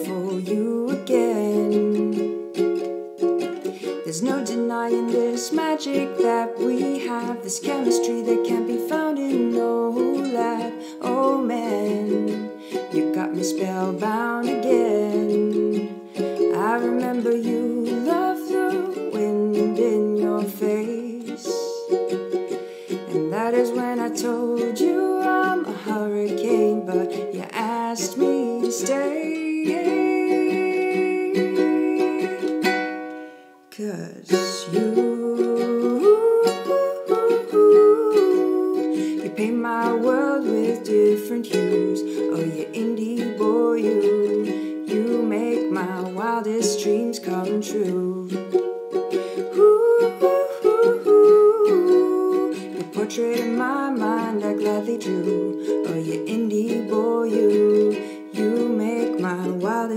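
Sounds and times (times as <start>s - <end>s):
ukulele strumming: 0.0s - 59.9s
woman singing: 0.0s - 59.9s.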